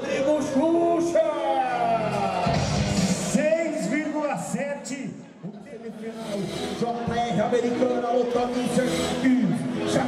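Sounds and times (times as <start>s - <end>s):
background music: 0.0s - 10.0s
man talking: 3.2s - 10.0s.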